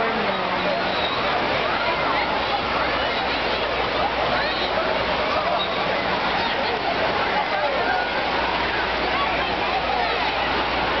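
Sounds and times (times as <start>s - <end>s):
churning foaming water: 0.0s - 11.0s
people's voices and shouts: 0.0s - 11.0s.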